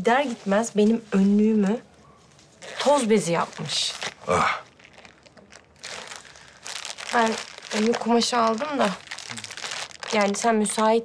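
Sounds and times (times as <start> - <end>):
packaging crinkling: 2.6 - 11.0.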